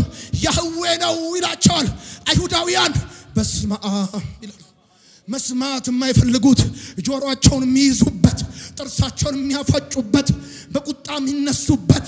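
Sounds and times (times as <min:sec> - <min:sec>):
man preaching through microphone: 0:00.0 - 0:12.0.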